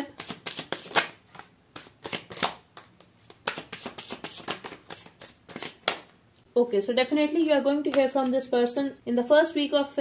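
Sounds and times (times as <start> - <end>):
cards being shuffled: 0.1 - 6.1.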